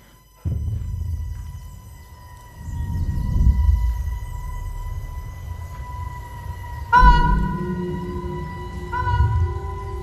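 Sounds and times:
low rumbling drone: 0.5s - 10.0s
high held tone: 6.9s - 10.0s.

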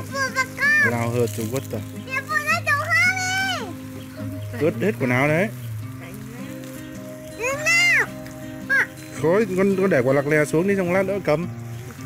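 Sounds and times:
child's gliding calls: 0.0s - 1.0s, 2.0s - 3.9s, 7.3s - 9.0s
background music with low notes: 0.0s - 12.0s.

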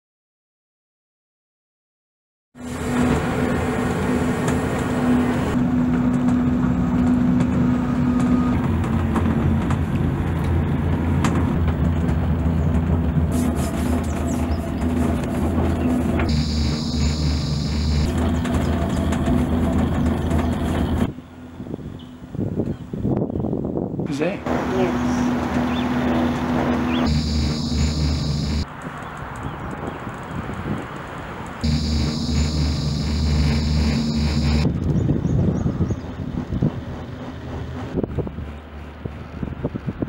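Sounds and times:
cable car cabin rumbling: 2.6s - 21.6s, 31.8s - 40.0s.

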